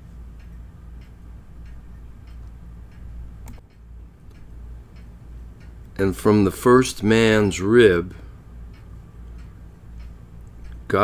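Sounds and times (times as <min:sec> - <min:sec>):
faint regular ticking: 0:00.0 - 0:11.0
low steady hum: 0:00.0 - 0:11.0.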